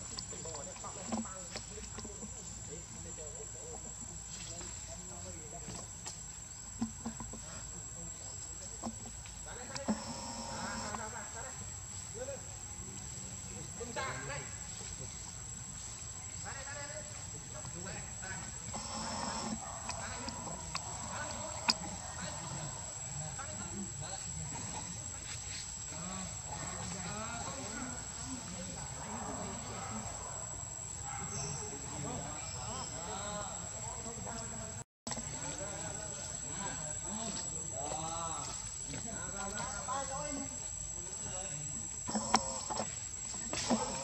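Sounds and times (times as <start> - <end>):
high-pitched insect drone: 9.5 - 11.5, 17.8 - 21.8.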